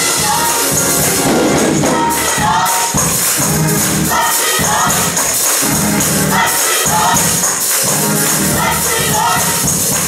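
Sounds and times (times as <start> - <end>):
group singing gospel: 0.0 - 10.0
tambourine shaken and struck: 0.0 - 10.0.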